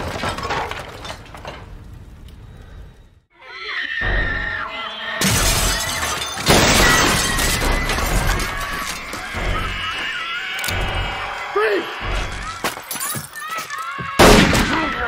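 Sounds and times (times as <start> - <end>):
crashing and breaking sounds: 0.0 - 2.3, 5.2 - 10.1
horror film music: 3.5 - 5.8, 7.0 - 14.9.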